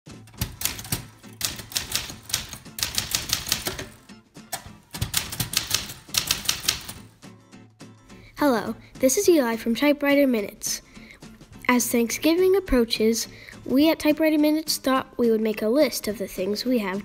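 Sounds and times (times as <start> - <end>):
manual typewriter typing: 0.2 - 7.1.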